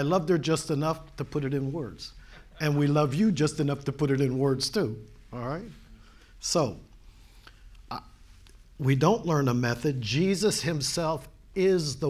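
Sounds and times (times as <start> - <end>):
man speaking: 0.0 - 6.9, 8.8 - 12.0.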